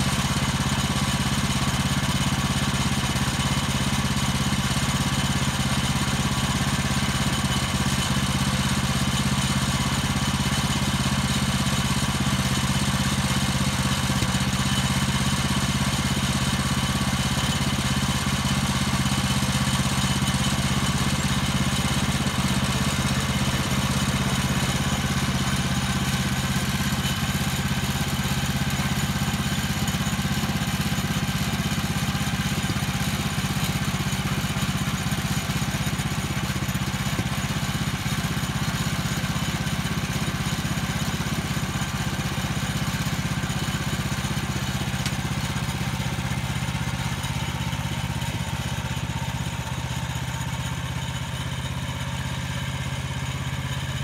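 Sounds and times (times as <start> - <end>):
small gasoline engine running: 0.0 - 54.0.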